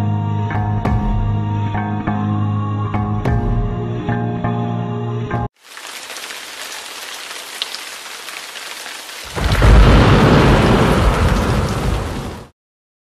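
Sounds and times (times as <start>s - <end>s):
rain hissing: 5.6s - 12.5s
thunder rumbling: 9.2s - 12.5s.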